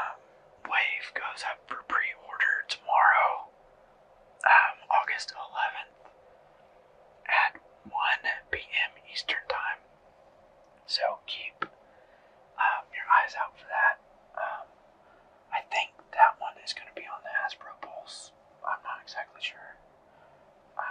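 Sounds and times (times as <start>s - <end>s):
person whispering: 0.0s - 3.5s, 4.4s - 6.0s, 7.2s - 9.8s, 10.9s - 11.7s, 12.6s - 14.8s, 15.5s - 19.8s.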